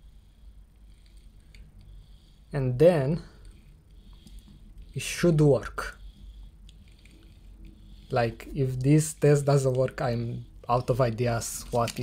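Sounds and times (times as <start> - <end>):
low steady hum: 0.0 - 12.0
faint clicks and rustles of handling: 0.4 - 12.0.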